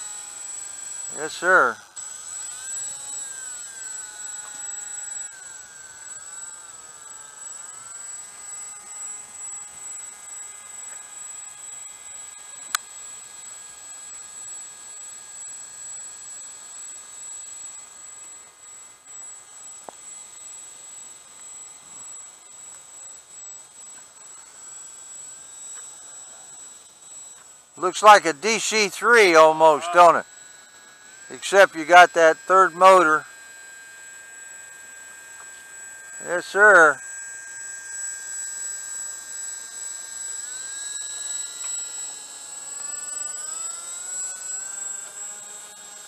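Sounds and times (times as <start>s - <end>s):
electric motors and propellers whining: 0.0s - 46.0s.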